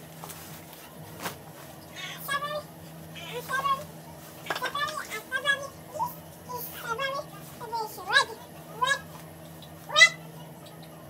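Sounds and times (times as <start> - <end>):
high-pitched vocal calls: 8.8 - 11.0.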